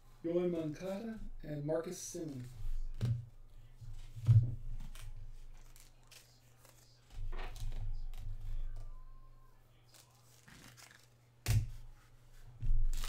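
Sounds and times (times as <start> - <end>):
trading cards being handled: 2.2 - 9.1, 9.8 - 11.9
cards snapping: 4.8 - 6.8, 9.9 - 11.8.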